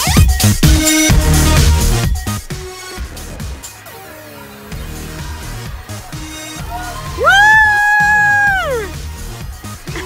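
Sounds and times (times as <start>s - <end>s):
background music: 0.0s - 10.0s
child screaming: 6.8s - 8.9s.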